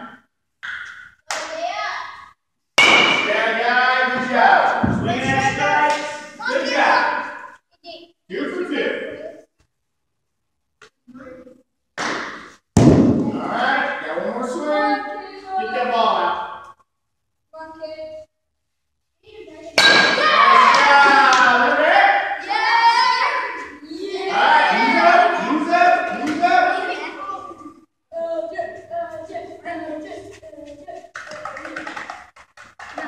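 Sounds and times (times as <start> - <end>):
children's voices: 1.4 - 2.4, 14.6 - 15.9, 21.8 - 32.1
loud thump: 4.8 - 5.5, 12.1 - 13.4.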